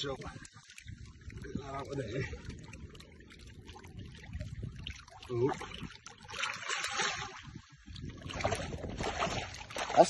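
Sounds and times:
water splashing and sloshing: 0.0s - 10.0s.

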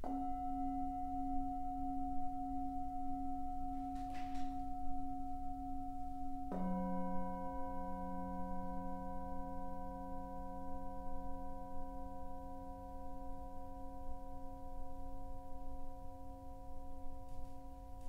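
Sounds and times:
singing bowls ringing: 0.0s - 18.0s.

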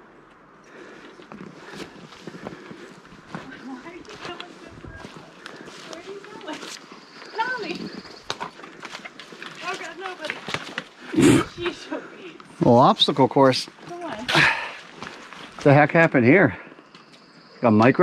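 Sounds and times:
footsteps crunching on forest litter: 1.2s - 11.1s, 13.7s - 16.0s.

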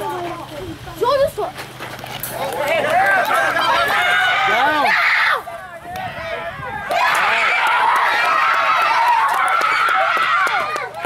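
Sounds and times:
spectators shouting and yelling: 2.3s - 11.0s.

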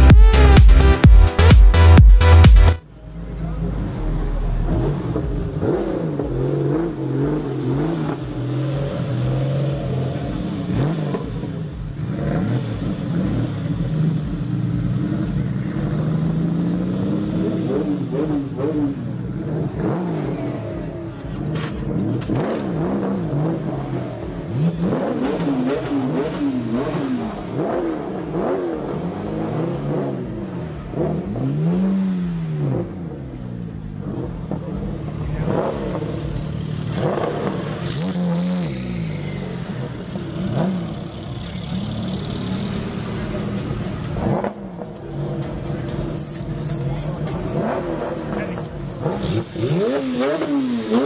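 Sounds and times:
car engine revving: 0.0s - 51.0s
faint voices: 19.6s - 26.1s, 40.8s - 50.5s.

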